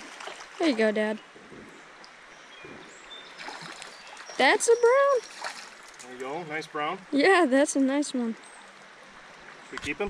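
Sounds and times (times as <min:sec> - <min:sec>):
creek water running: 0:00.0 - 0:10.0.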